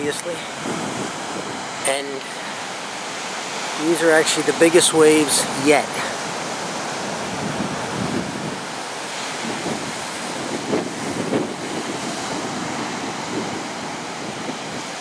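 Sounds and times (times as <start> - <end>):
ocean waves breaking on beach: 0.0 - 15.0.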